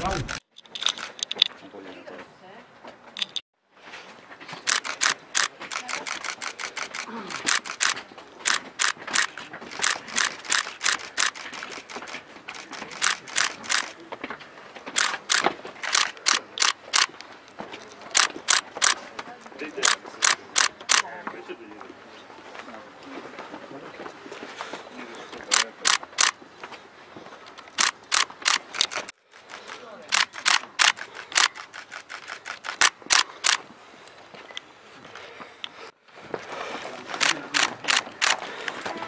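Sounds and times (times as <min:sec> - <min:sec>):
camera shutters clicking: 0:00.0 - 0:01.5, 0:04.6 - 0:14.0, 0:15.0 - 0:17.3, 0:18.0 - 0:19.0, 0:19.8 - 0:21.1, 0:25.5 - 0:26.4, 0:27.5 - 0:33.6, 0:37.1 - 0:38.9
murmur of voices: 0:17.7 - 0:26.4, 0:36.5 - 0:39.0.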